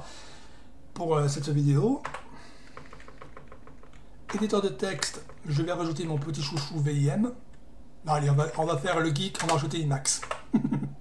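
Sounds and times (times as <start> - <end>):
computer keyboard key presses: 2.0 - 5.5, 9.3 - 10.5.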